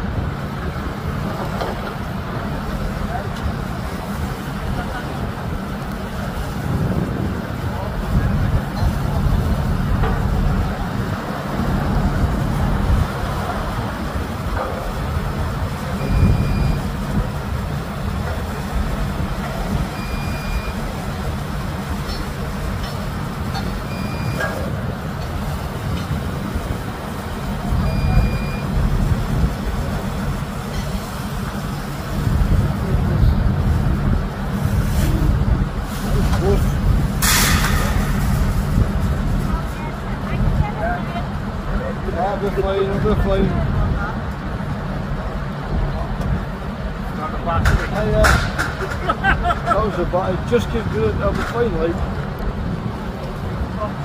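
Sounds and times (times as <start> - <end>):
heavy engine rumbling: 0.0 - 54.0
high warning beep: 16.0 - 16.9, 19.9 - 20.9, 23.8 - 24.7, 27.7 - 28.8.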